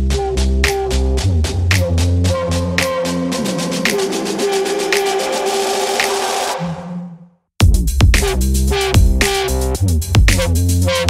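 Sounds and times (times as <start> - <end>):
electronic music with steady beat: 0.1 - 6.6, 7.6 - 11.0.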